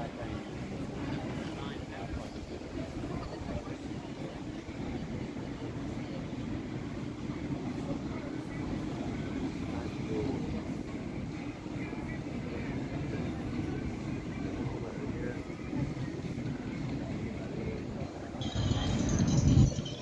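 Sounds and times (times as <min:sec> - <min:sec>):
low city rumble: 0:00.0 - 0:20.0
indistinct voices: 0:13.1 - 0:20.0.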